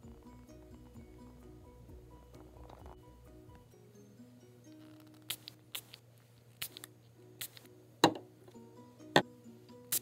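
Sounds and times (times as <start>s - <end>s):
soft background music: 0.0s - 10.0s
spray bottle hissing spurts: 5.3s - 6.0s, 6.6s - 7.7s.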